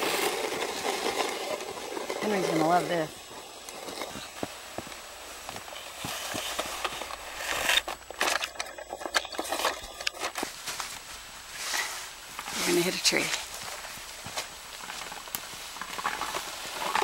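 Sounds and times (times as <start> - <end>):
plastic blade crunching through snow: 0.0 - 8.1
crackles and clicks: 0.0 - 17.0.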